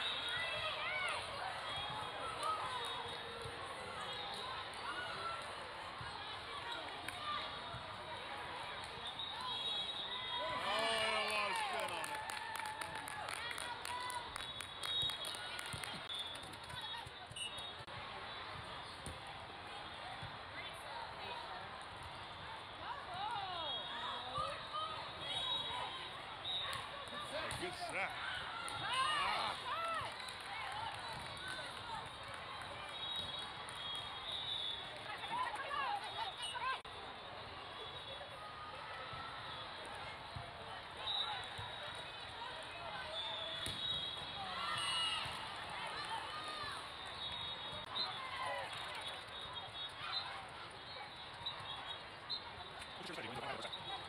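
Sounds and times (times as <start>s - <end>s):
players' voices in a hall: 0.0s - 15.0s, 15.6s - 34.0s, 34.6s - 54.0s
loud shout: 10.3s - 14.2s.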